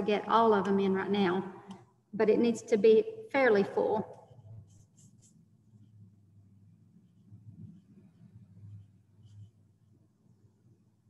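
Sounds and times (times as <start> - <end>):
paintbrush strokes on canvas: 4.0 - 10.8.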